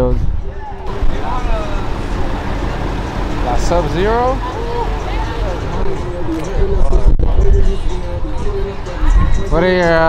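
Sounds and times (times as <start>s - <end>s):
crowd rumble: 0.1s - 9.5s.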